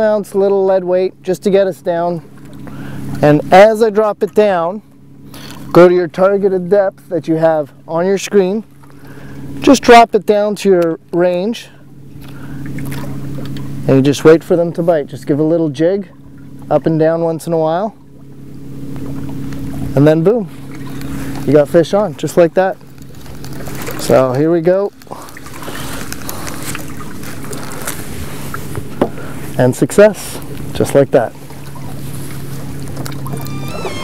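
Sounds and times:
boat engine humming: 0:00.0 - 0:34.0.

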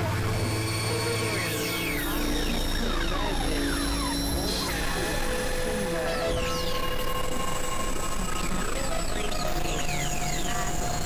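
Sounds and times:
low electronic drone: 0:00.0 - 0:11.0.

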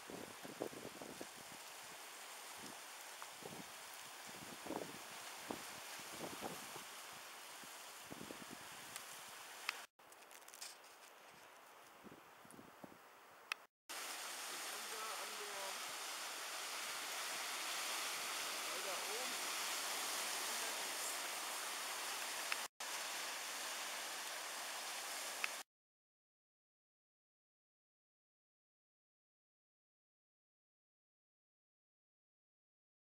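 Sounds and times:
waves washing over rocks: 0:14.0 - 0:25.6.

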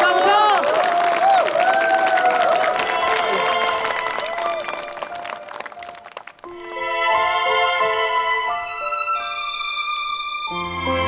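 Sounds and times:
crowd clapping: 0:00.0 - 0:06.6
music playing: 0:02.6 - 0:11.0.

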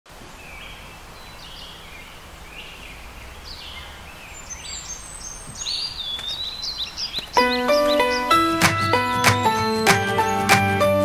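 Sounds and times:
birds chirping and calling: 0:00.4 - 0:11.0.

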